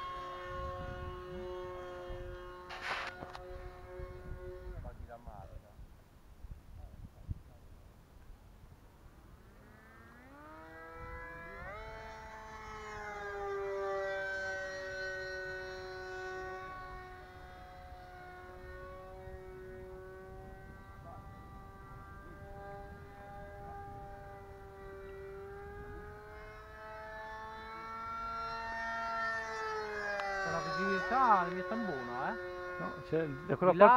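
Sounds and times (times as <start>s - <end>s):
model plane electric motor whine: 0.0s - 5.7s, 8.9s - 33.9s.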